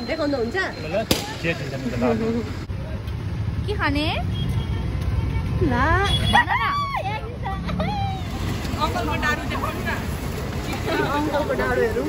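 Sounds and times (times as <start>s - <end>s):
street traffic rumble: 0.0s - 12.0s
crowd: 4.5s - 12.0s.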